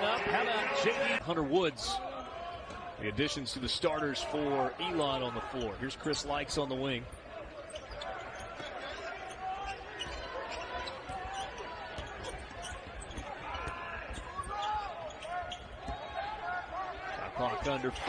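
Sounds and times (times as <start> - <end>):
crowd noise and voices: 0.0 - 18.0.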